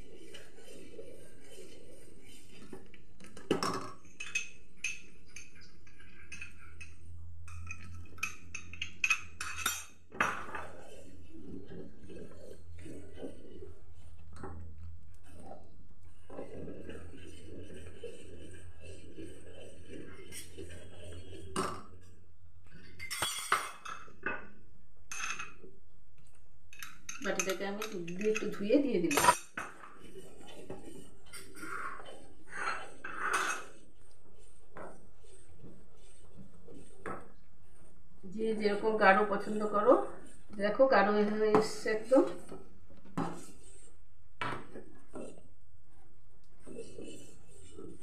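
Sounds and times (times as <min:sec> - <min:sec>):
spatula scraping a metal pan: 0:16.4 - 0:21.6, 0:28.3 - 0:37.3, 0:46.6 - 0:48.0.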